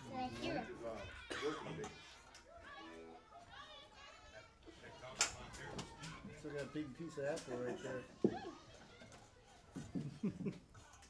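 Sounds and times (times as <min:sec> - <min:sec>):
background chatter of voices: 0:00.0 - 0:11.0
children talking: 0:00.0 - 0:11.0.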